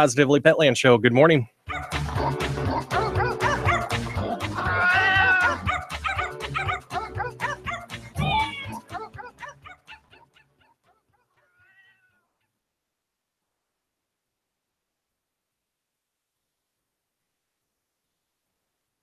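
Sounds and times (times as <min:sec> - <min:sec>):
music with steady beat: 0:01.7 - 0:09.4
small dog yipping and whining: 0:04.7 - 0:06.8.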